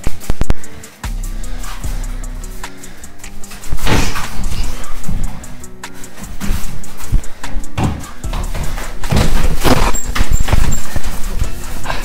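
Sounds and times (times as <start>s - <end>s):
thuds of punches and kicks: 9.0s - 10.7s.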